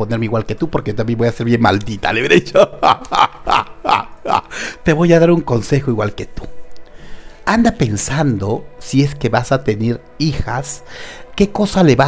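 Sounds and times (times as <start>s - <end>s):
man laughing in breathy bursts: 2.2s - 4.8s.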